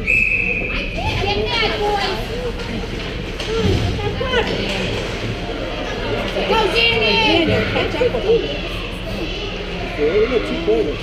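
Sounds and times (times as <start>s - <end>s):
spectators calling and shouting: 0.0s - 11.0s.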